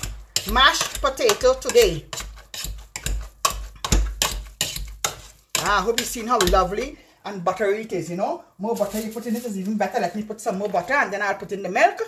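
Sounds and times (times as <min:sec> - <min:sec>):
masher knocking metal pot: 0:00.0 - 0:02.2
potato masher thumping: 0:00.0 - 0:06.9.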